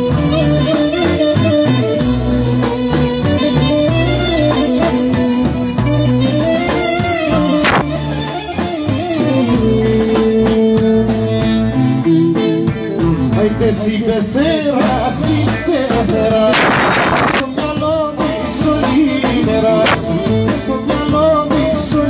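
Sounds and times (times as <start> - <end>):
live band music through speakers: 0.0 - 22.0.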